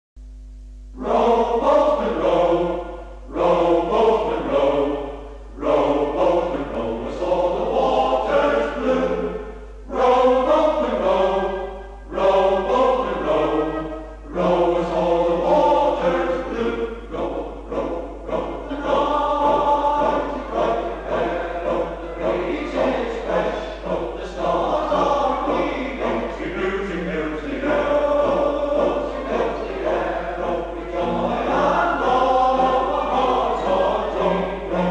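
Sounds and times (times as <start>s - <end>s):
low tape hum: 0.2s - 34.9s
male choir singing: 1.0s - 34.9s.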